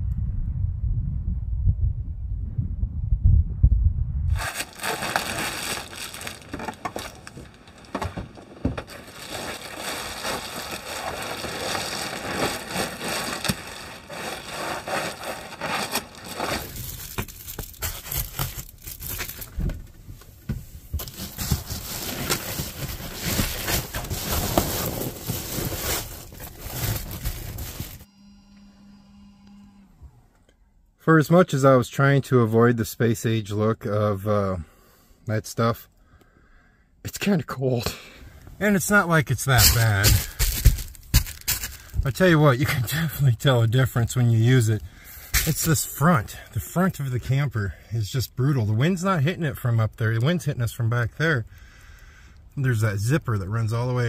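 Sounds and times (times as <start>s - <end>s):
low rumble: 0.0s - 6.4s
foil insulation crinkling: 4.4s - 20.0s, 20.8s - 28.1s, 39.4s - 46.2s.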